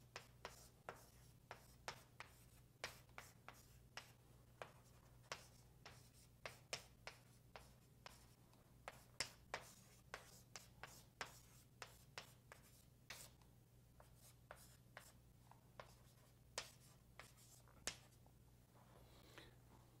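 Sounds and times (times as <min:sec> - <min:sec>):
low electrical hum: 0:00.0 - 0:20.0
pen writing strokes: 0:00.1 - 0:13.4, 0:15.8 - 0:18.2.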